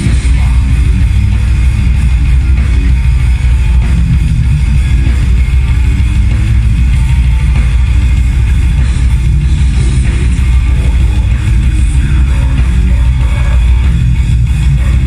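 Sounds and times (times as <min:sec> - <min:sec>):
death metal band playing live: 0:00.0 - 0:15.0
distorted electric guitars: 0:00.0 - 0:15.0
drums: 0:00.0 - 0:15.0.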